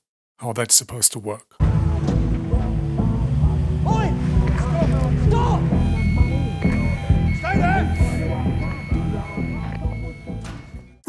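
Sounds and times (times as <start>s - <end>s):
drama soundtrack music: 1.6s - 11.0s.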